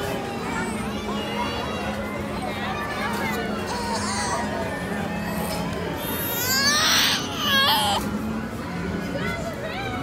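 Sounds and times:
baby crying: 6.0 - 8.0.

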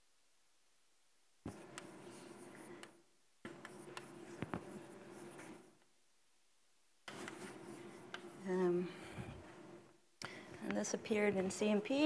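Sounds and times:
chalk scratching on blackboard: 3.5 - 5.7.

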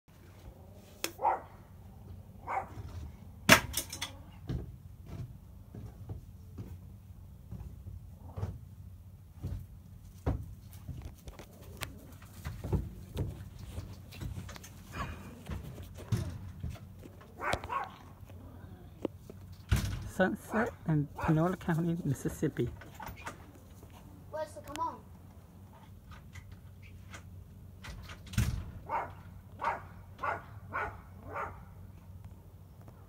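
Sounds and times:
dog bark: 1.2 - 1.6, 2.4 - 2.9, 17.4 - 18.0, 20.5 - 21.4, 28.8 - 31.7.

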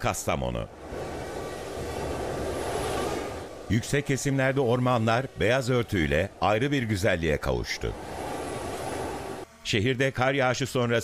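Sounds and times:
steady rushing rumble: 0.6 - 9.4.

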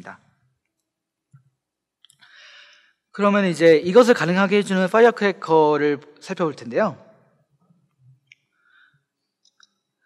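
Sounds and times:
man speaking: 0.0 - 0.3, 3.2 - 7.0.

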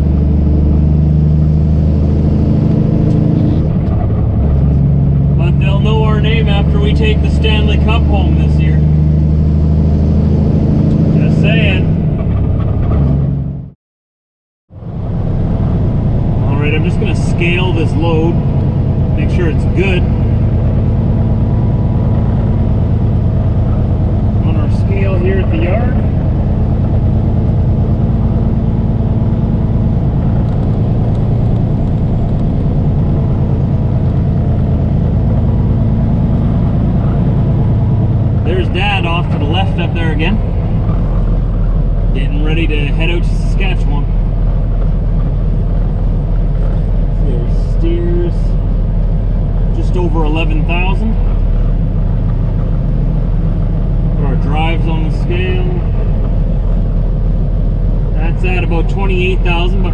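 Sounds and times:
diesel engine droning: 0.0 - 13.8, 14.7 - 59.9.

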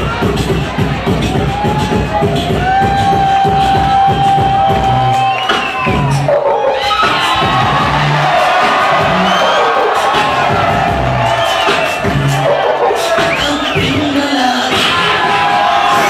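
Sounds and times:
crowd cheering: 0.0 - 16.0
crowd whooping: 0.0 - 16.0
live hip-hop music: 0.0 - 16.0.

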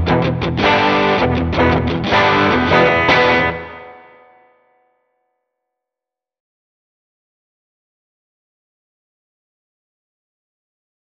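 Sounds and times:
guitar chord ringing: 0.0 - 5.0.

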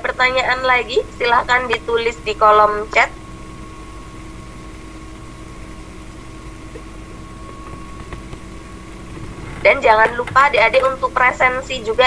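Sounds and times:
low hum: 0.0 - 12.0
thin even whine: 0.5 - 12.0.

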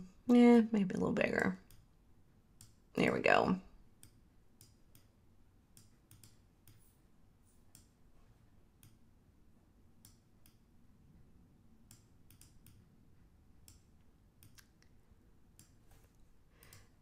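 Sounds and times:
computer mouse clicks: 1.6 - 1.9, 4.0 - 7.0, 7.6 - 8.0, 8.7 - 9.0, 10.0 - 10.7, 11.8 - 12.9, 13.6 - 15.8, 16.6 - 17.0.

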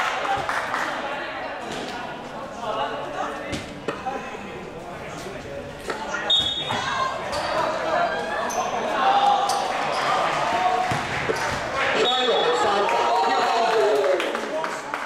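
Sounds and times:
basketball bouncing on court: 10.8 - 11.7.

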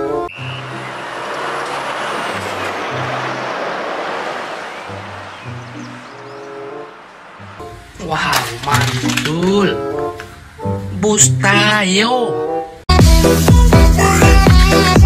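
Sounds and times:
truck road noise: 0.0 - 11.7
music with repeating bass line: 12.9 - 15.0.

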